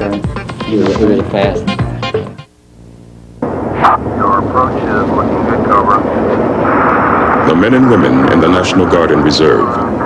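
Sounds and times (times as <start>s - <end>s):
jet engine roar in cockpit: 3.4s - 10.0s.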